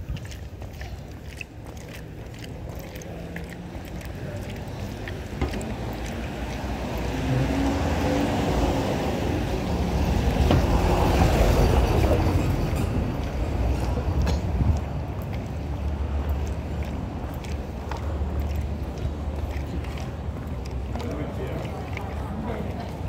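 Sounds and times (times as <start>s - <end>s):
vehicle rumbling past: 3.5s - 23.0s.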